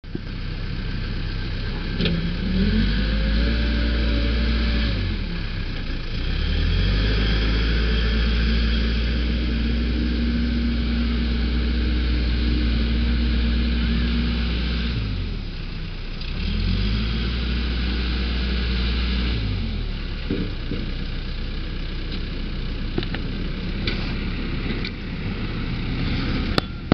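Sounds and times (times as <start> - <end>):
diesel engine revving: 0.0 - 26.9.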